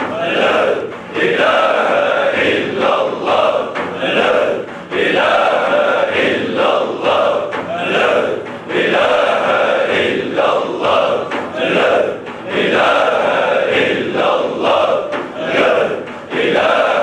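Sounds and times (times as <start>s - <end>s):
men chanting rhythmically: 0.0s - 17.0s.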